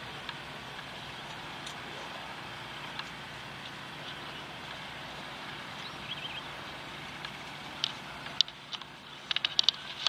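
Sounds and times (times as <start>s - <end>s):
outdoor rumble and hiss: 0.0s - 10.0s
faint clicks: 7.2s - 10.0s.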